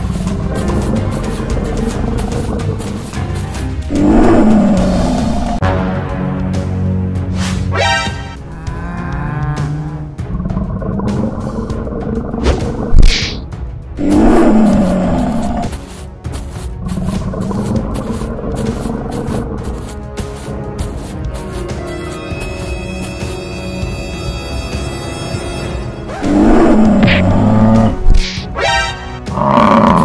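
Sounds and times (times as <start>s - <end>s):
dramatic background music: 0.0s - 30.0s
lion roar: 3.9s - 5.6s, 14.0s - 15.7s, 26.2s - 28.0s, 29.3s - 30.0s.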